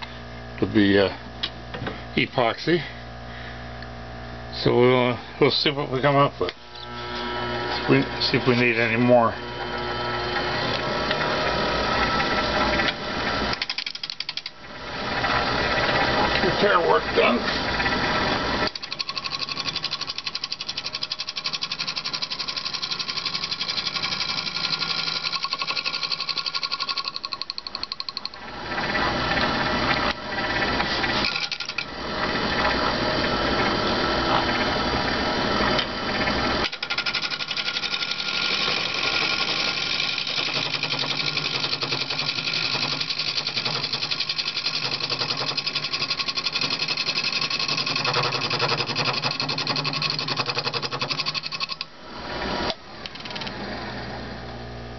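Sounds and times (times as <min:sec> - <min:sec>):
turning tool cutting wood: 0:06.0 - 0:53.6
wood lathe running: 0:06.8 - 0:52.6.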